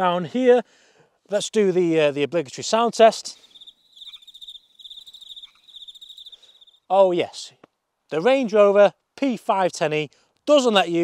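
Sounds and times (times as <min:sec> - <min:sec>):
insect trilling: 0:03.3 - 0:06.9.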